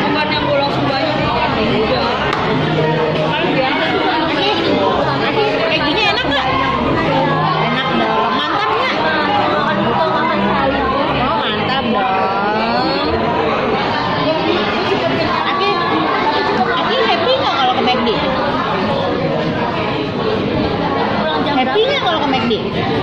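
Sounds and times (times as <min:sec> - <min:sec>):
chatter of voices: 0:00.0 - 0:23.0.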